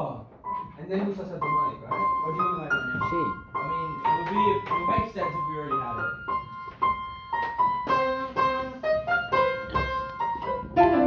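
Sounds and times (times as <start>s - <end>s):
upright piano melody: 0.0s - 11.0s.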